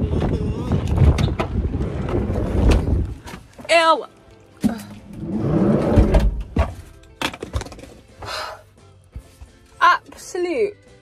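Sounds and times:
wind buffeting microphone: 0:00.0 - 0:03.3.

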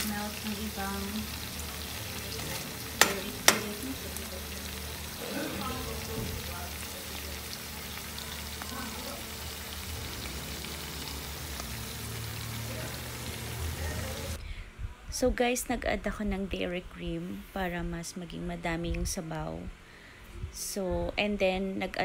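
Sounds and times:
food sizzling in a frying pan: 0:00.0 - 0:14.4
spatula knocking against pan: 0:03.0 - 0:03.8.

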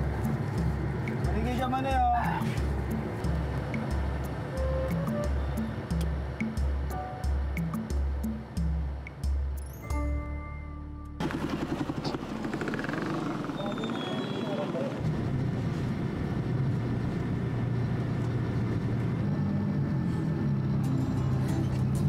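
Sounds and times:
vehicle engines running: 0:00.0 - 0:09.7, 0:11.2 - 0:22.0
background music low held notes: 0:00.0 - 0:11.2.

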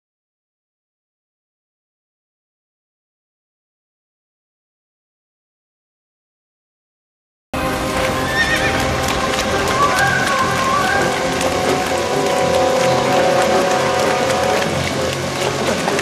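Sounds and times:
background music: 0:07.6 - 0:16.0
hooves clopping on dirt road: 0:07.6 - 0:16.0
horse whinnying: 0:08.3 - 0:08.8.

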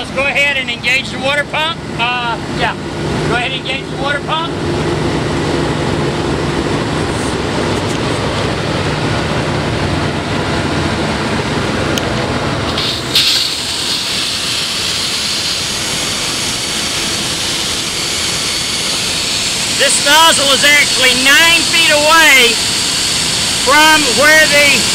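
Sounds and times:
water pump engine running: 0:00.0 - 0:24.9
high-pressure water jetting: 0:12.6 - 0:24.9.

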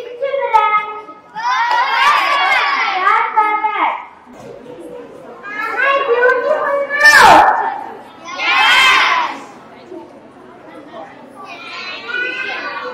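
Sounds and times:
child speaking through loudspeaker: 0:00.0 - 0:04.2, 0:05.4 - 0:09.6, 0:10.9 - 0:12.9.

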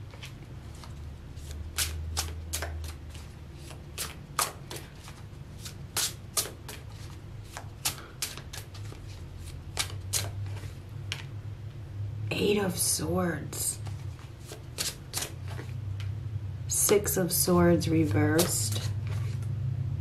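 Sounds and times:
cards being shuffled: 0:00.0 - 0:11.3, 0:13.8 - 0:16.1, 0:18.0 - 0:19.5.

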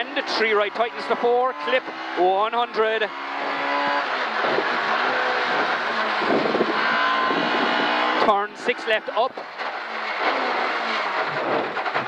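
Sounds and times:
car engine running hard: 0:00.0 - 0:12.0
road and wind noise: 0:00.0 - 0:12.0.

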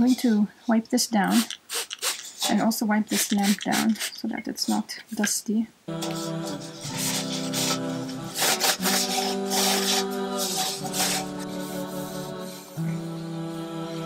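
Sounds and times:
cloth rubbing metal basket: 0:01.3 - 0:04.3, 0:06.1 - 0:12.7
unaccompanied vocal singing: 0:05.9 - 0:14.0.

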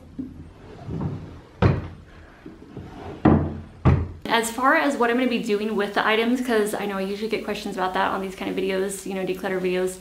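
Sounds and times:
wooden drawers closing with thuds: 0:00.2 - 0:04.2.

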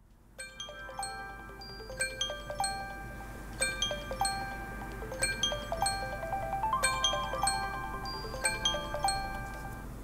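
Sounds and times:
bell-like struck melody: 0:00.4 - 0:09.9.

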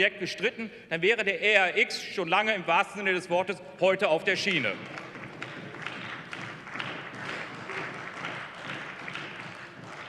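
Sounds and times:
people applauding: 0:04.4 - 0:10.0.

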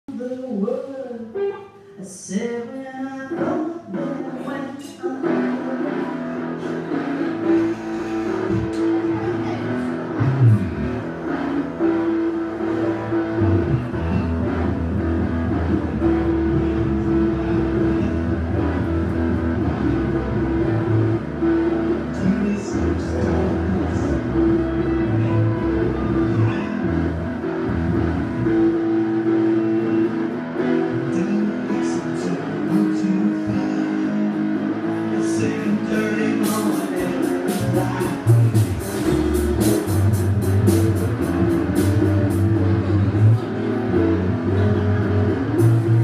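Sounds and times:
electric guitars through amplifiers: 0:00.1 - 0:46.0
heavy bass: 0:05.2 - 0:46.0.

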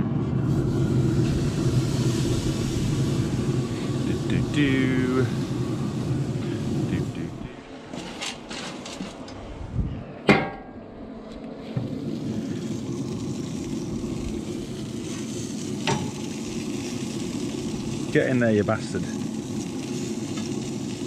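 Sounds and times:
meat sizzling on grill: 0:00.4 - 0:08.7, 0:11.7 - 0:21.0
metal grill lid clank: 0:10.3 - 0:10.8, 0:15.8 - 0:16.3.

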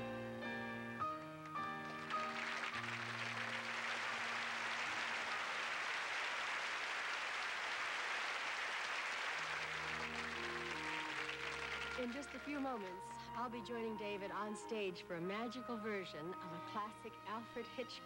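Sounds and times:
soft music: 0:00.0 - 0:05.9, 0:09.4 - 0:18.0
audience applauding: 0:01.1 - 0:13.1.

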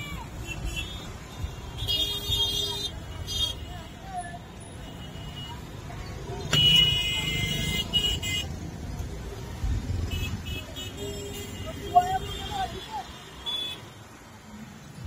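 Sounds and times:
busy street traffic: 0:00.0 - 0:15.0.

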